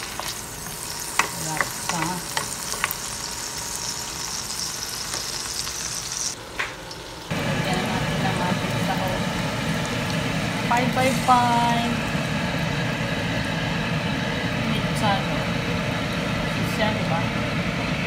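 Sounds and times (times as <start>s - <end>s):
food sizzling in oil: 0.0s - 16.8s.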